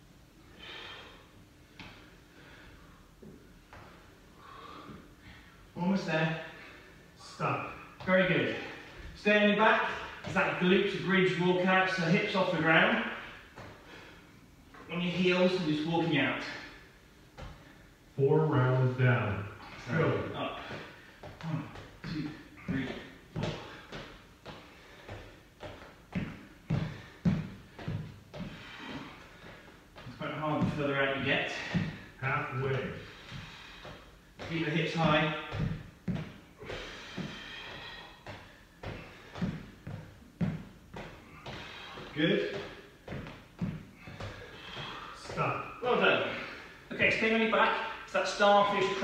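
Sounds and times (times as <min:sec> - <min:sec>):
thuds on foam mats: 0:20.6 - 0:30.8, 0:33.1 - 0:45.4.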